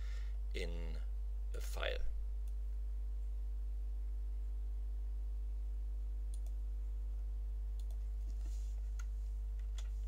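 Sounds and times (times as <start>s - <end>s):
low electrical hum: 0.0s - 10.0s
computer mouse clicks: 6.3s - 6.6s, 7.8s - 8.4s.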